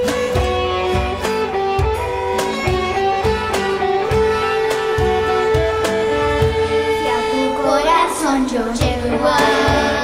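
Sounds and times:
acoustic guitar: 0:00.0 - 0:10.0
violins holding a long note: 0:04.9 - 0:10.0
person singing: 0:06.8 - 0:10.0
low drum beat: 0:08.7 - 0:10.0.

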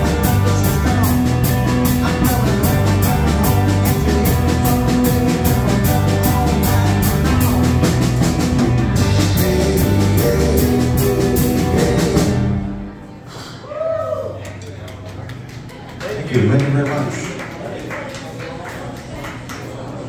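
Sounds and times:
drums beating steadily: 0:00.0 - 0:12.8
live rock band playing: 0:00.0 - 0:13.2.

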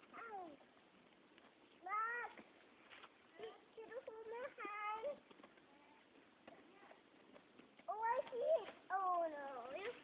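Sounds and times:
young child calling: 0:00.1 - 0:00.6, 0:01.8 - 0:02.4.

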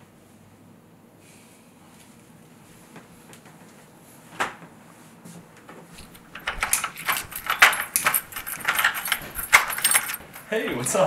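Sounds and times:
light metallic jangling: 0:06.0 - 0:11.0.

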